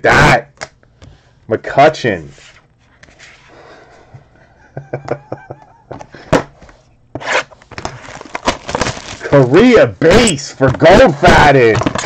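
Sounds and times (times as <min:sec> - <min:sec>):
man laughing: 0:04.4 - 0:06.3
card packs rustling: 0:07.2 - 0:12.0.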